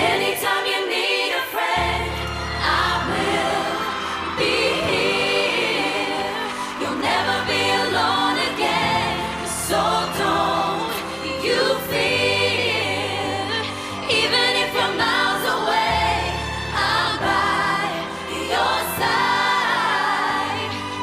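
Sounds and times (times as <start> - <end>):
female vocal group singing in harmony: 0.0 - 21.0.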